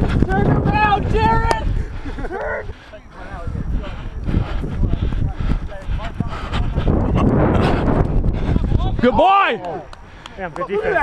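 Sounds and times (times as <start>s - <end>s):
running footsteps on grass: 0.0s - 11.0s
wind buffeting microphone: 0.0s - 11.0s.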